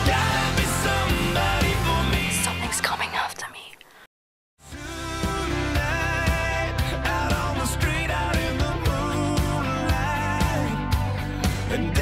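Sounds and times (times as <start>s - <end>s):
music: 0.0s - 3.3s, 4.6s - 12.0s
woman whispering: 2.3s - 4.1s.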